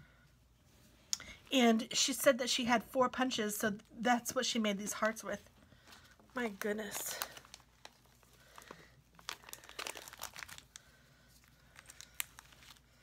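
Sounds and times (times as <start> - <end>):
plastic sleeve crinkling: 5.0 - 13.0.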